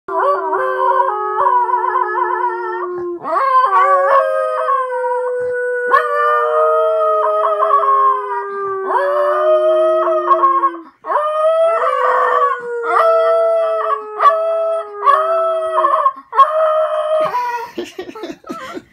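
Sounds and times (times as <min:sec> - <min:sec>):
dog howling: 0:00.1 - 0:17.4.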